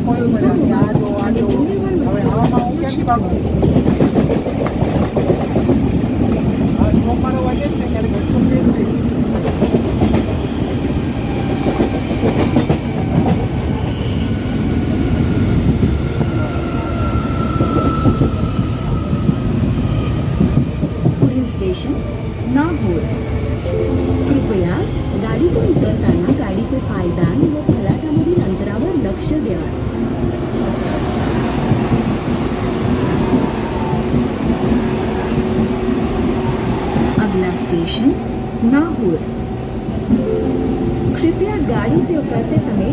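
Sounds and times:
train rumbling: 0:00.0 - 0:42.9.

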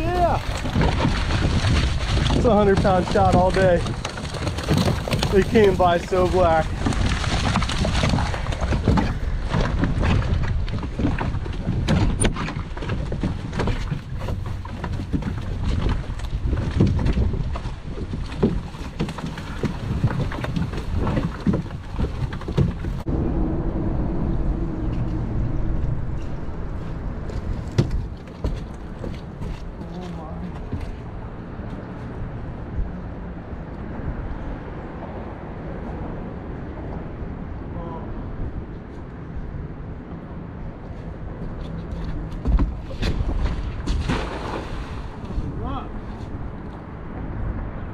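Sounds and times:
wind on microphone: 0:00.0 - 0:30.0, 0:30.6 - 0:47.9
boat moving on water: 0:00.0 - 0:47.9.

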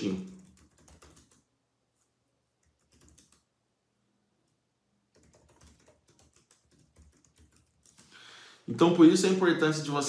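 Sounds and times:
typing on computer keyboard: 0:00.1 - 0:01.5, 0:02.6 - 0:03.5, 0:05.1 - 0:08.2.

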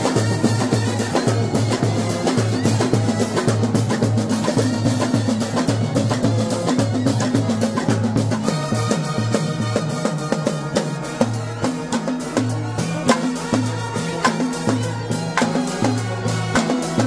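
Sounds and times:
bass drums beating: 0:00.0 - 0:17.0
snare drum strokes: 0:00.0 - 0:17.0
street brass band playing: 0:00.0 - 0:17.0
trumpets and saxophones: 0:00.0 - 0:17.0.

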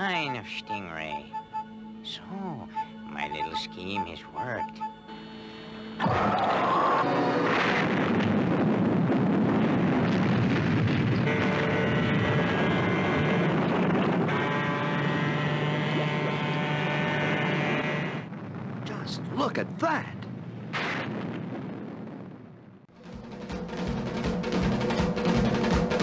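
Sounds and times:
long steady rumble: 0:04.8 - 0:18.8
explosion: 0:06.0 - 0:12.6, 0:20.7 - 0:22.7.

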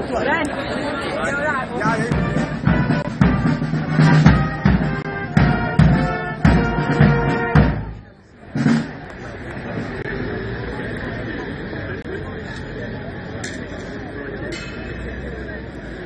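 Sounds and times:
brass band playing a march: 0:01.8 - 0:09.0
bass drum beating: 0:01.9 - 0:08.0.

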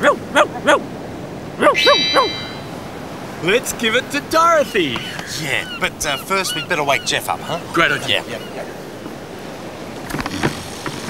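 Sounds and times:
bright chime: 0:01.8 - 0:02.9.

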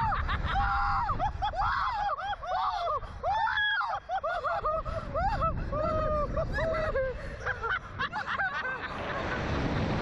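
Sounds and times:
people screaming and laughing: 0:00.0 - 0:09.6.

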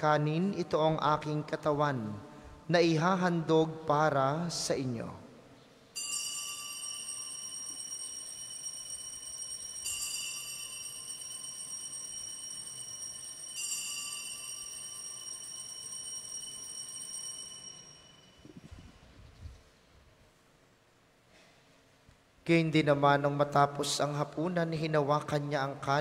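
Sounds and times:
altar bells ringing: 0:06.0 - 0:18.6.

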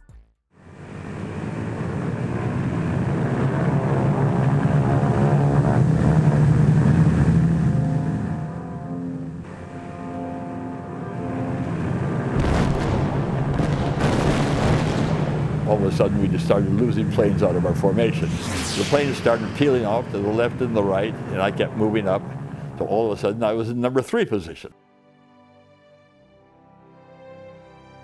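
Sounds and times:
propeller aircraft engines droning: 0:00.6 - 0:24.6
sharp cracks: 0:12.4 - 0:15.7.

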